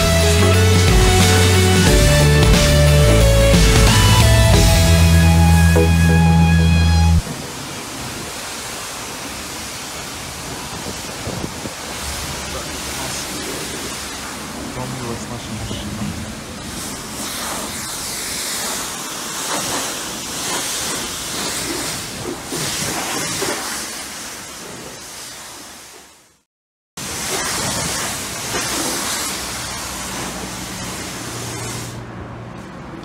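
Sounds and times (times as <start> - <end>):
pressure washer water spray hissing: 0.0 - 5.2, 16.4 - 26.1, 27.0 - 32.1.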